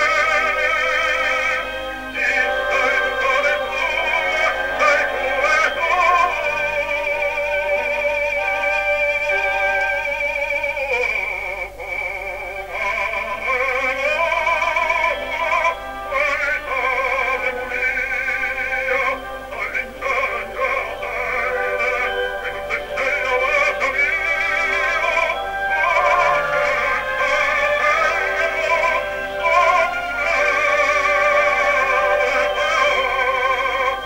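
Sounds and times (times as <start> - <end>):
operatic baritone singing: 0.0 - 34.0.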